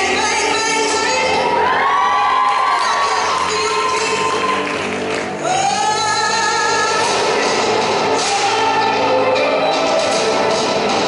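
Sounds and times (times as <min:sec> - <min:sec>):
backing music: 0:00.0 - 0:11.0
audience cheering and whooping: 0:01.4 - 0:05.4.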